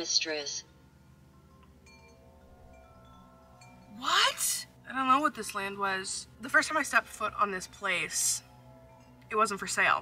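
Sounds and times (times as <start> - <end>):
faint chime-like ringing tones: 0.6 - 10.0.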